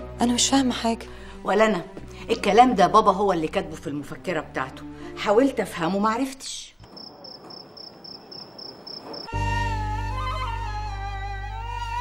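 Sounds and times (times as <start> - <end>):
crickets chirping: 6.8 - 9.4.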